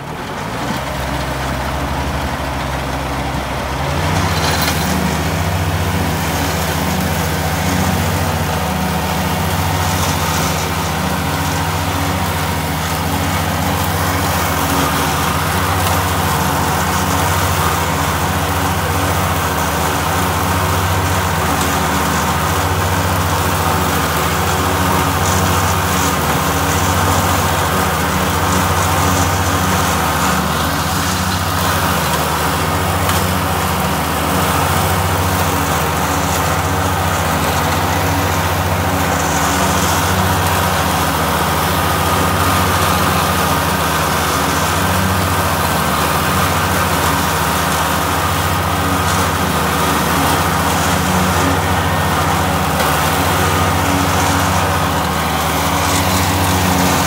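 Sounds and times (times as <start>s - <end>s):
rotary mower cutting grass: 0.0s - 57.0s
tractor diesel engine under load: 0.0s - 57.0s.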